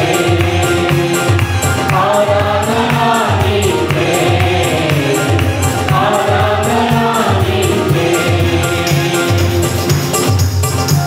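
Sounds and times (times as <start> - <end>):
choir singing worship song: 0.0 - 10.4
keyboard with steady beat: 0.0 - 11.0.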